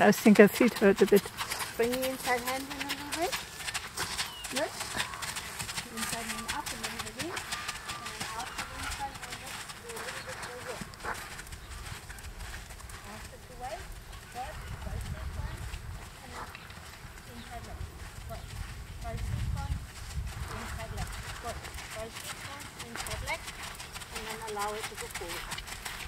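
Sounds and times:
hooves on sand: 0.0 - 26.0.

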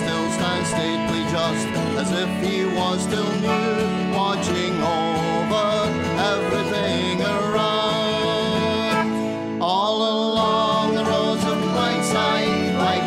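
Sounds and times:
whistle melody: 0.0 - 9.4, 10.4 - 13.0
acoustic guitar and banjo strumming: 0.0 - 13.0.

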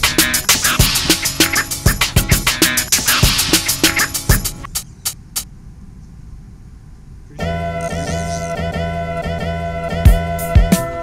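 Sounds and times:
traffic rumble: 0.0 - 9.8.

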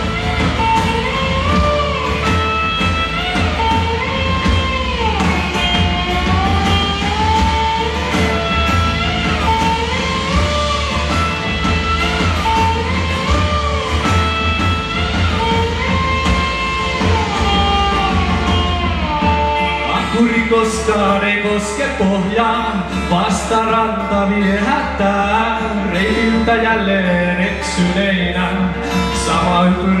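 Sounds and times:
rock band playing: 0.0 - 30.0.

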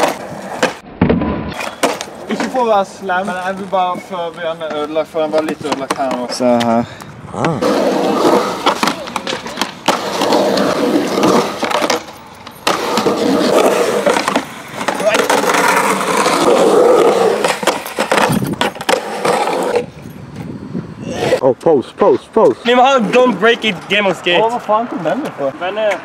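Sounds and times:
skateboard wheels rolling on concrete: 0.0 - 26.0
skateboard clacking on ground: 1.5 - 20.5.

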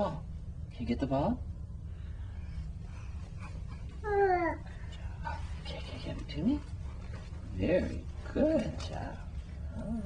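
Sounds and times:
low background hum: 0.0 - 10.0
toddler vocal sound: 3.8 - 4.8.

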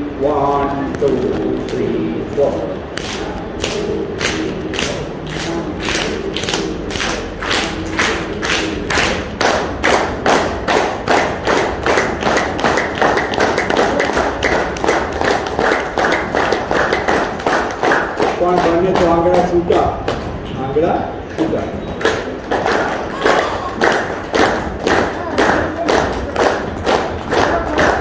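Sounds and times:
man clapping hands: 3.0 - 20.4, 21.4 - 28.0.

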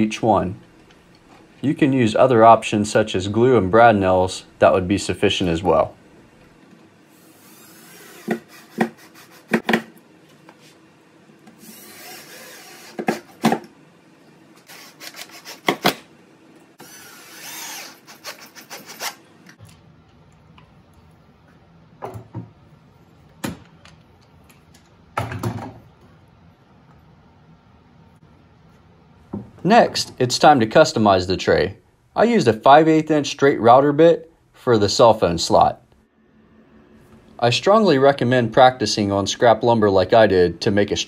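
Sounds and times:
cordless drill whirring: 11.6 - 13.1, 16.8 - 19.2.

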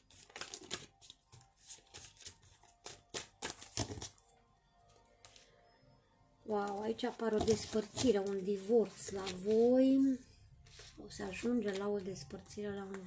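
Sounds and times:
soft background music: 0.0 - 13.0
cards clicking and slapping: 0.1 - 4.3.

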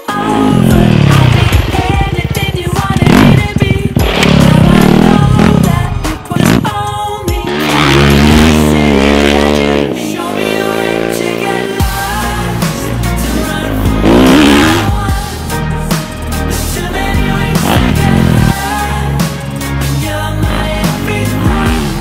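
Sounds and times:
motorcycle engines revving: 0.0 - 15.3, 16.2 - 22.0
music: 0.0 - 22.0.

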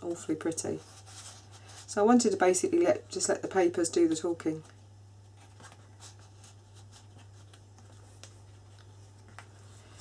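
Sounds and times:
paper pages rustling: 0.7 - 1.9, 4.6 - 10.0.

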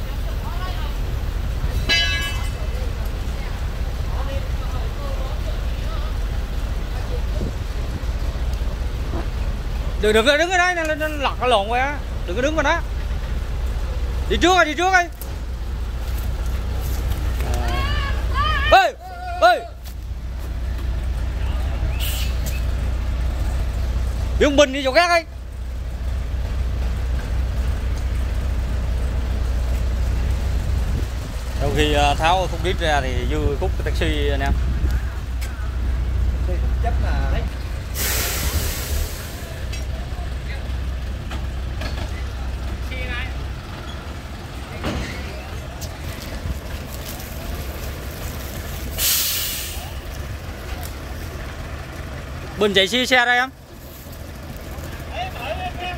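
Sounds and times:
truck engine rumbling: 0.0 - 55.9
hiss of released air: 21.9 - 22.7, 37.9 - 39.7, 48.9 - 50.0.

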